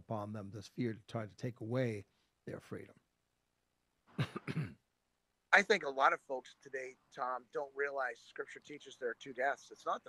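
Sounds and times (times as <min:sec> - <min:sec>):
man clearing his throat: 0:04.2 - 0:04.8.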